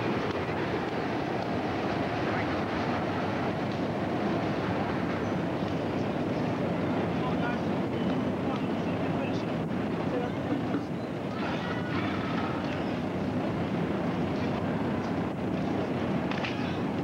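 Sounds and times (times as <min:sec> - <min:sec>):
outdoor background noise: 0:00.0 - 0:17.0
indistinct voices: 0:06.0 - 0:13.0.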